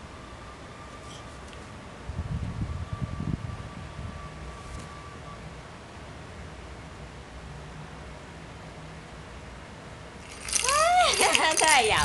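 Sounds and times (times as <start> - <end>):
baby toy jingling: 10.3 - 12.0
high-pitched excited exclamation: 10.6 - 12.0.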